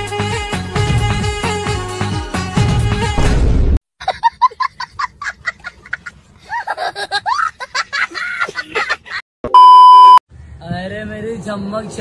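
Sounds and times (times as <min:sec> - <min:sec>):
boy laughing hysterically: 0:04.0 - 0:09.2.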